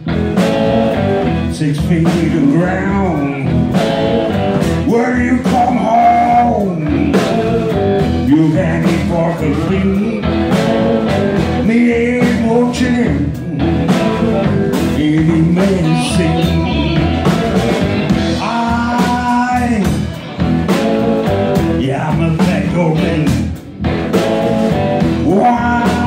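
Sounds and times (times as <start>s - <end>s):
blues band playing: 0.0s - 26.0s.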